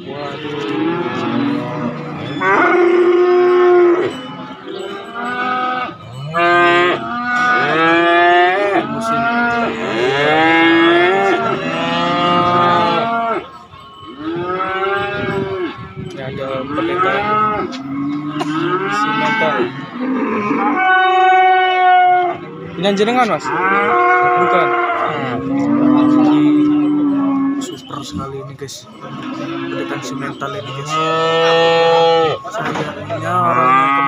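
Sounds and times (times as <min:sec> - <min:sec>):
cattle mooing loudly: 0:00.0 - 0:27.8, 0:28.9 - 0:34.0.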